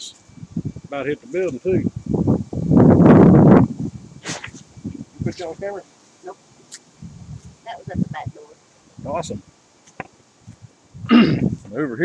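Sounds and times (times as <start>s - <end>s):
rustling noise: 3.6s - 8.3s, 9.8s - 10.8s
brief hiss: 4.2s - 5.5s.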